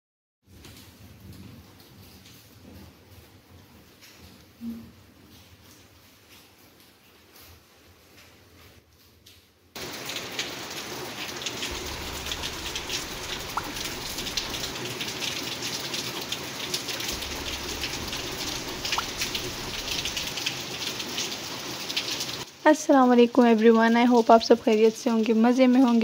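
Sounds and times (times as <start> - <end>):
steady rain falling: 0.5 - 26.0.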